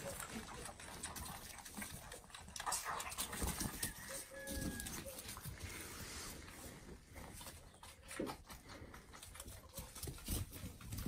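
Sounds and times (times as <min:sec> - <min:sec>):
animals tapping and knocking: 0:00.0 - 0:05.5.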